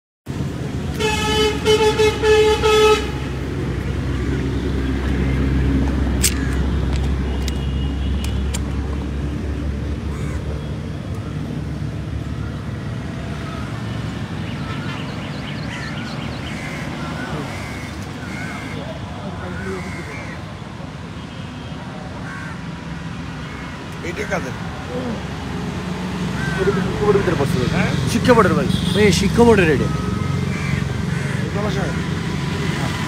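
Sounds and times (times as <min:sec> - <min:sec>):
road traffic rumble: 0:00.3 - 0:33.0
vehicle horn blasts: 0:00.9 - 0:03.4, 0:07.3 - 0:08.5, 0:28.6 - 0:29.3.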